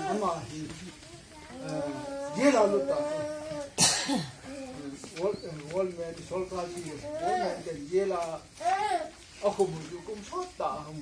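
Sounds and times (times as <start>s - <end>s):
man speaking: 1.6s - 3.8s, 4.5s - 11.0s
sharp cough: 3.8s - 4.4s.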